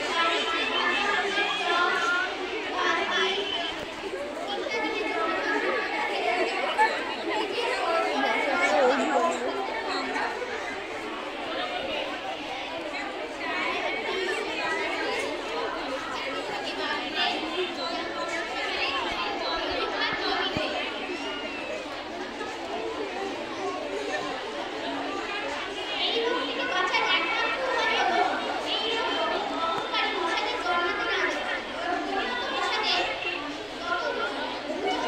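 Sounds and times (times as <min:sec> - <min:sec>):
girls chattering: 0:00.0 - 0:35.0.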